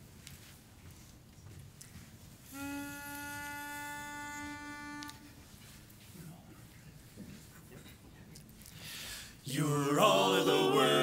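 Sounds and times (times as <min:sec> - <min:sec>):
pitch pipe held note: 0:02.5 - 0:05.4.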